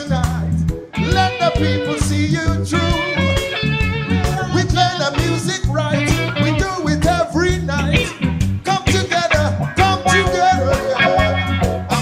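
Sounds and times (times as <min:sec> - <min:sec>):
man singing into a microphone: 0:00.0 - 0:03.4, 0:04.2 - 0:12.0
bass guitar: 0:00.0 - 0:12.0
electric guitar: 0:00.0 - 0:12.0
steady rhythmic beat: 0:00.0 - 0:12.0.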